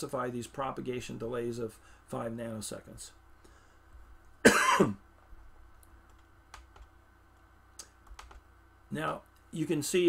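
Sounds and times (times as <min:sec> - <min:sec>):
man coughing: 0:04.4 - 0:05.0.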